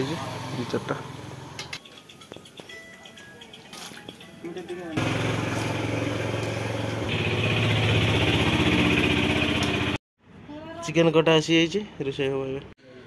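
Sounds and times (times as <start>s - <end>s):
small engine running: 0.0s - 1.6s, 4.9s - 10.0s.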